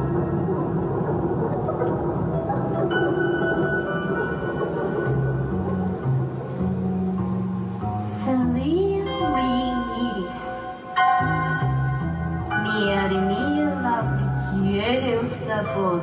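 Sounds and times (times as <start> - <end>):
ambient synth music: 0.0 - 16.0.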